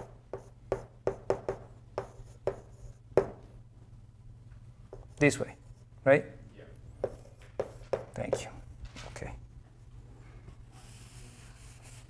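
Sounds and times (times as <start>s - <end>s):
chalk tapping and scratching: 0.0s - 3.4s, 7.0s - 8.5s.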